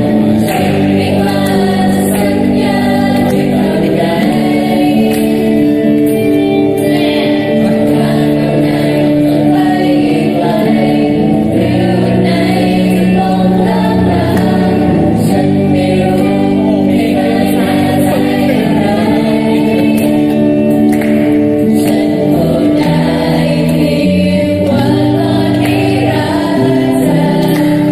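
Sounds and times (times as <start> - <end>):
acoustic guitar: 0.0 - 27.9
group singing in chorus: 0.0 - 27.9.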